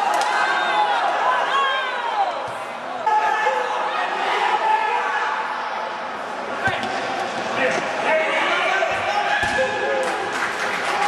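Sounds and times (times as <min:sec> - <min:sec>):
shouting and chatter in hall: 0:00.0 - 0:11.0.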